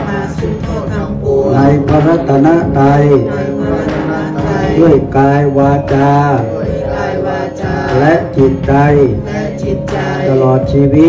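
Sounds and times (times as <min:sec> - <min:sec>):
man chanting prayer: 0:00.0 - 0:11.0
musical accompaniment: 0:00.0 - 0:11.0.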